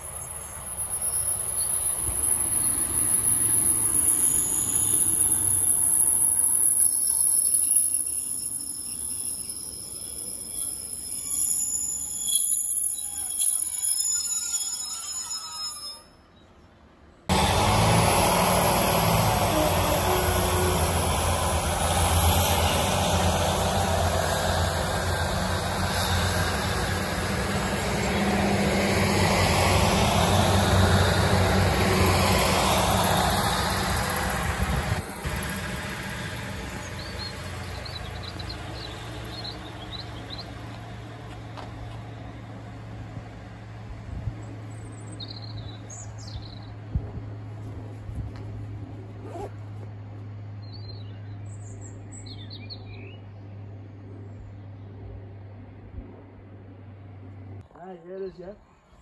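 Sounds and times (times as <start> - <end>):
train wheel squeal: 0.0 - 16.4, 19.3 - 34.2
diesel train engine rumble: 0.0 - 58.6.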